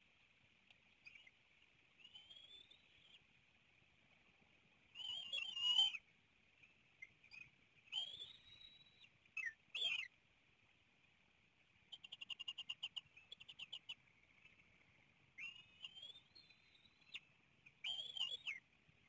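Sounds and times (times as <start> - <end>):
faint high hiss: 0.0 - 19.0.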